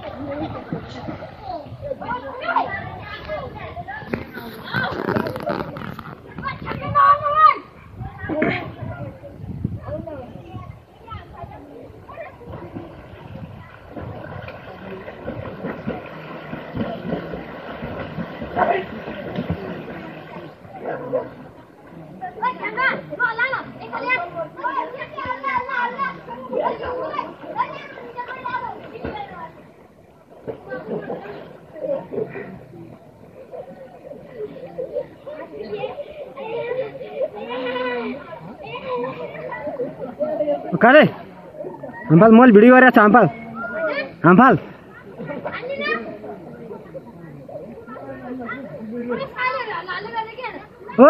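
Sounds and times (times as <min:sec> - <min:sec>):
children calling and talking: 0:00.0 - 0:51.0.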